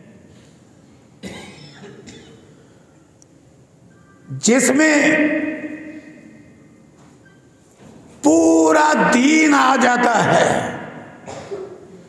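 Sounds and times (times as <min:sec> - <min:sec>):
person coughing: 0:01.2 - 0:02.8, 0:11.2 - 0:12.0.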